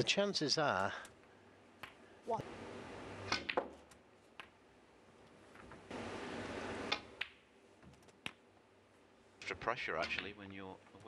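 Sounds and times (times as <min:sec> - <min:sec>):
sharp snooker clicks: 0:03.2 - 0:04.6.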